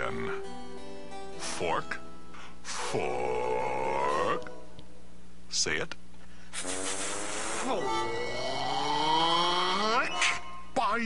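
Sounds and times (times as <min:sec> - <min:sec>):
soft background music: 0:00.0 - 0:05.1, 0:07.4 - 0:11.0
strained raspy cartoon voice: 0:02.7 - 0:04.5.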